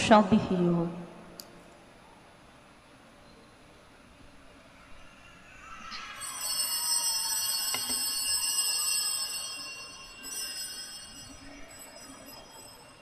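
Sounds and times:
bell-like chiming: 0:05.9 - 0:13.0.

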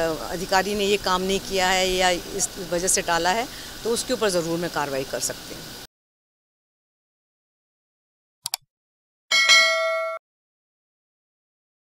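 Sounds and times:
notification bell ding: 0:09.3 - 0:10.2.

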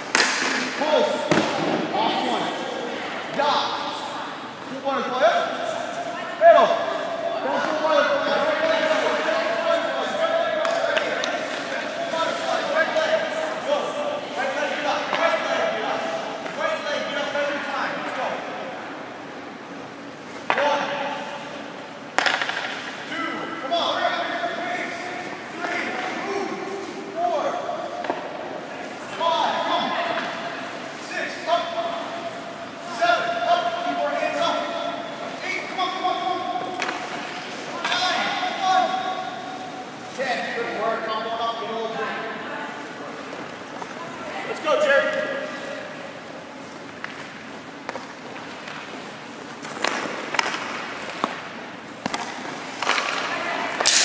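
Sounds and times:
voices echoing: 0:00.0 - 0:54.0.

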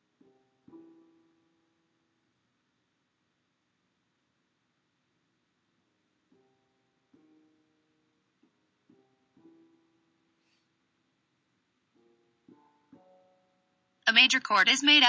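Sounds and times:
keyboard chords: 0:00.0 - 0:02.0, 0:11.9 - 0:15.0.

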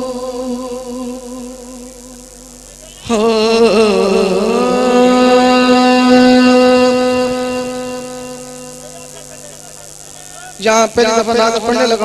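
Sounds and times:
held buzzy musical note: 0:03.0 - 0:10.3.

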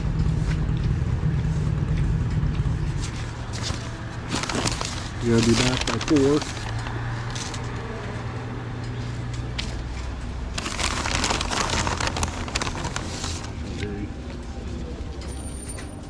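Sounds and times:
paper bag rustling: 0:03.0 - 0:07.6, 0:10.4 - 0:14.1.

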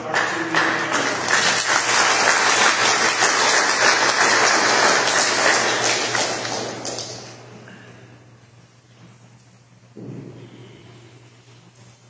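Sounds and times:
congregation applauding: 0:00.0 - 0:07.5.

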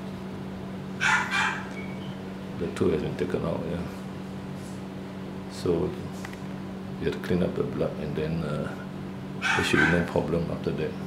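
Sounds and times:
steady low hum: 0:00.0 - 0:11.0
short animal cry: 0:01.0 - 0:01.8, 0:09.4 - 0:10.0.

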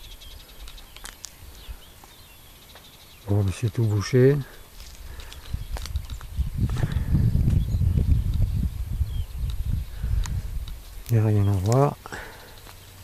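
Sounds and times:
wind buffeting microphone: 0:03.3 - 0:11.9
faint clicks: 0:09.4 - 0:12.8.

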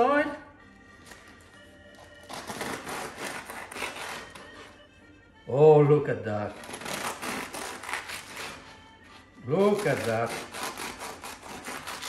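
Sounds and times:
bread knife sawing crusty bread: 0:02.2 - 0:04.8, 0:06.5 - 0:12.0.

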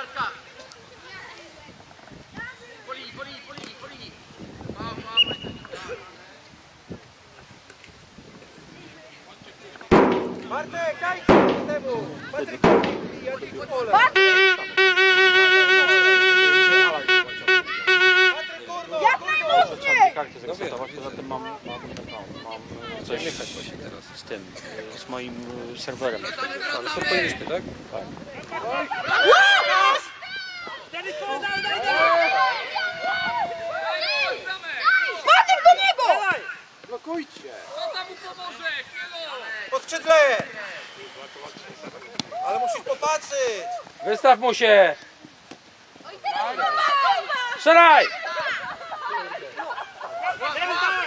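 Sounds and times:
voices calling out and talking: 0:00.0 - 0:51.0
horn sounding: 0:14.0 - 0:18.7.

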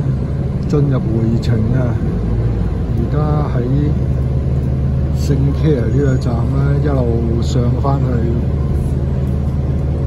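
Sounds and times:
bus engine and road rumble: 0:00.0 - 0:10.0.

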